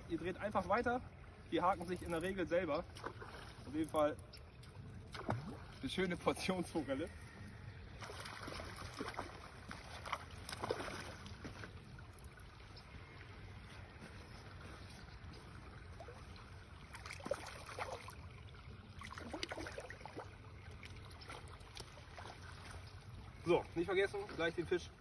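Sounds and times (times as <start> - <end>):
water splashing and sloshing: 0.0 - 25.0.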